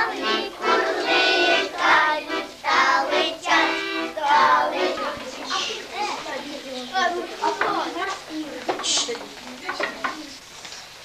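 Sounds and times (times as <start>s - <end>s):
children chattering: 0.0s - 11.0s
tape hiss: 0.0s - 11.0s.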